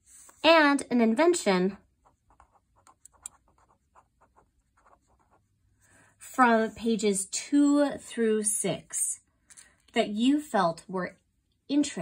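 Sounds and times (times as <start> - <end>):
pen scratching on paper: 2.0 - 5.5.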